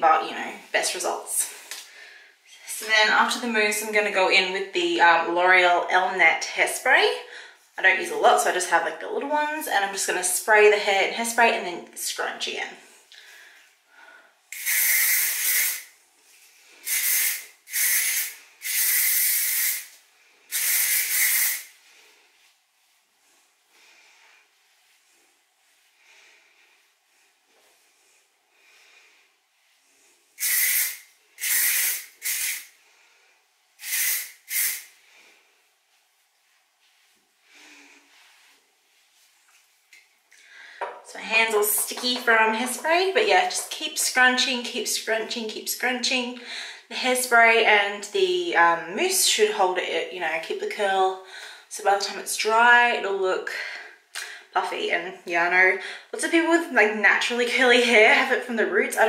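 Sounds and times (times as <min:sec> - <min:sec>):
hairspray hissing bursts: 0:14.5 - 0:15.9, 0:16.8 - 0:21.8, 0:30.4 - 0:32.8, 0:33.8 - 0:35.0.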